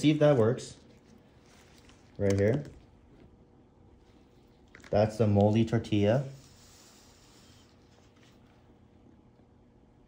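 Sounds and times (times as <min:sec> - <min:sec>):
light handling sounds: 0:00.2 - 0:03.4.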